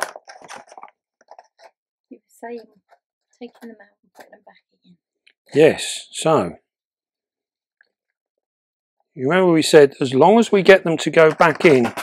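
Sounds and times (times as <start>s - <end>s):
plastic tub crinkling: 0.0s - 1.8s, 11.1s - 12.0s.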